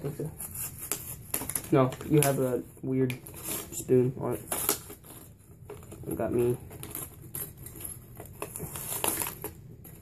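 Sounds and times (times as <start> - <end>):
plastic packaging crinkling: 3.3 - 10.0.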